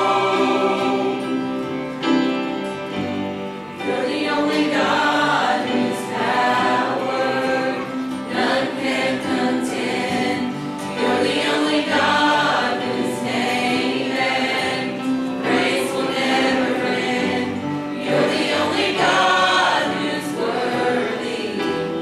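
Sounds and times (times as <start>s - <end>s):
church choir singing: 0.0s - 22.0s.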